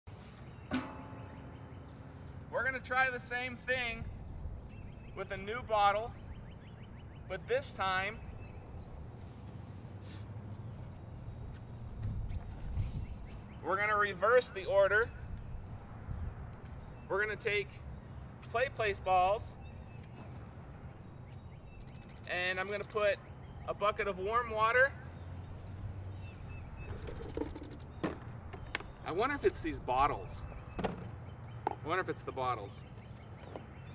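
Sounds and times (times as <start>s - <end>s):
small birds chirping: 0.1s - 33.9s
bird trill: 0.5s - 2.4s, 4.0s - 8.7s, 20.9s - 23.9s, 26.1s - 29.2s.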